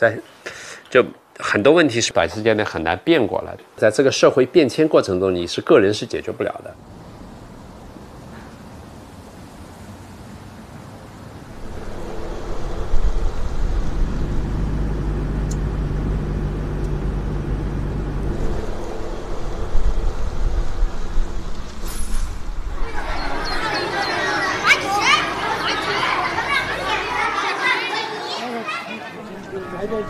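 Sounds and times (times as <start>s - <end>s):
car engine and tyres rumbling: 6.8s - 22.9s.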